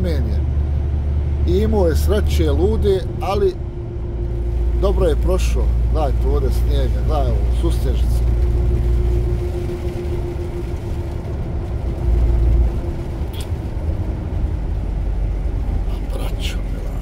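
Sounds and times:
truck engine and road rumble: 0.0 - 17.0
tyres on wet road: 0.0 - 17.0.

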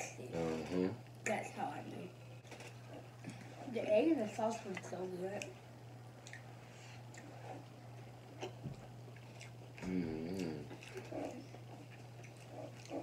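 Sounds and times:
steady low hum: 0.0 - 13.0
chewing and wet mouth clicks: 6.2 - 6.5, 7.1 - 13.0
person humming mmm: 9.8 - 10.8.

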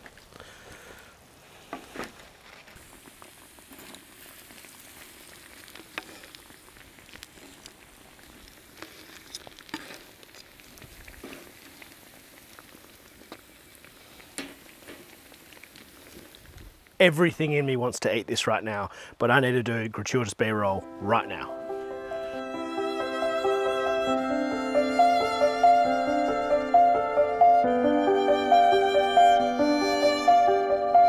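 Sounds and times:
food sizzling on grill: 2.6 - 17.0.

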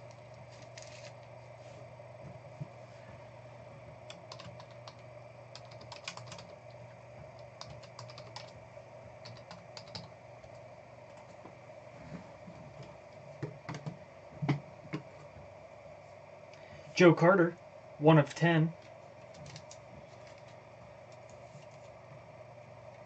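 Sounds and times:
steady low hum: 0.0 - 23.0
typing on computer keyboard: 4.1 - 6.6, 7.3 - 8.6, 9.2 - 11.2, 13.6 - 14.0, 19.3 - 20.4.

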